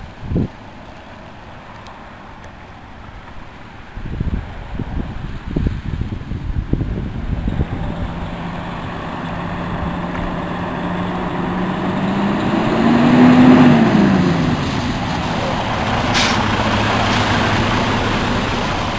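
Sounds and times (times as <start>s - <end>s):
truck diesel engine passing: 0.8s - 18.9s
air hiss: 16.0s - 17.4s.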